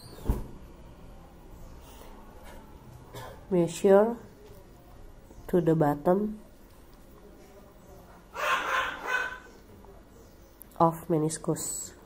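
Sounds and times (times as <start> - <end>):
dog barking: 8.3 - 9.5.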